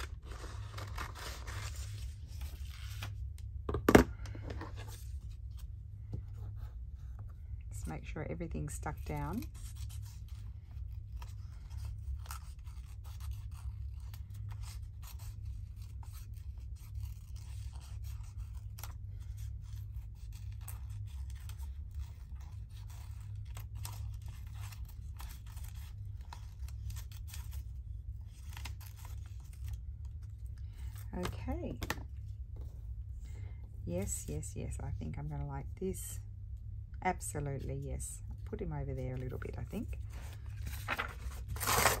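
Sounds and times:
paper handling: 0:00.0 - 0:03.2, 0:39.2 - 0:42.0
steady low hum: 0:00.0 - 0:42.0.

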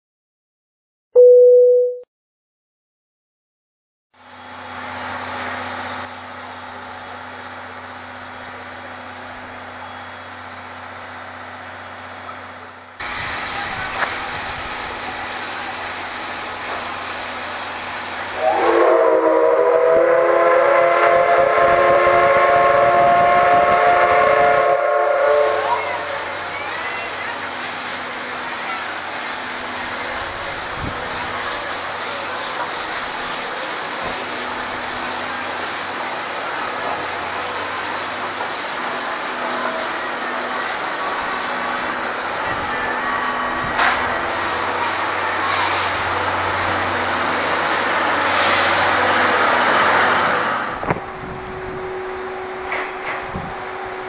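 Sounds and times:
steam locomotive hissing: 0:04.3 - 0:53.5
steam whistle blast: 0:18.3 - 0:26.5.

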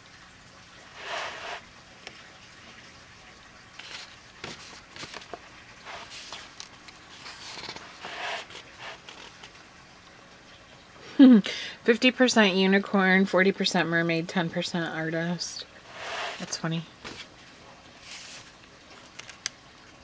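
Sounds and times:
paper pages rustling: 0:03.8 - 0:09.6, 0:18.0 - 0:19.5.

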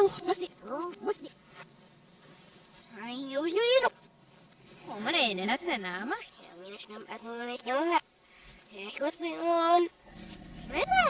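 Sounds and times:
girl's speech played backwards: 0:00.0 - 0:01.3, 0:03.0 - 0:03.9, 0:10.7 - 0:11.0
voice gliding up and down: 0:10.7 - 0:11.0.

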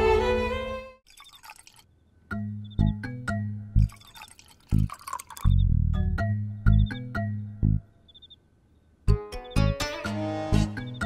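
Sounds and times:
liquid pouring into steel tumbler: 0:01.1 - 0:01.9, 0:03.8 - 0:05.5
background music with bass line: 0:02.4 - 0:03.9, 0:05.5 - 0:07.8, 0:09.1 - 0:11.0.

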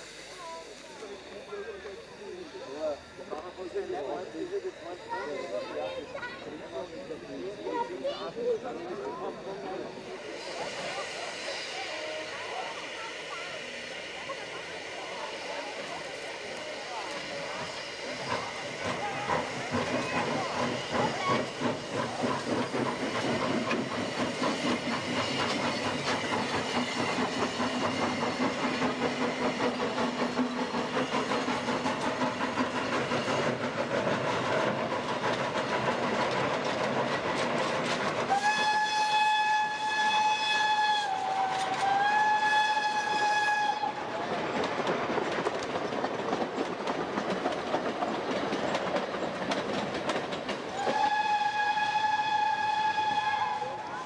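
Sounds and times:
steam locomotive chuffing: 0:00.0 - 0:54.0
steam whistle blast: 0:38.3 - 0:44.0, 0:50.7 - 0:54.0.

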